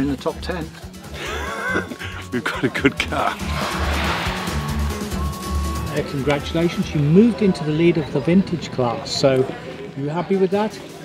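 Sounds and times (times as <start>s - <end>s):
background music with bass: 0.0s - 8.9s
rally car passing on wet road: 3.3s - 6.3s.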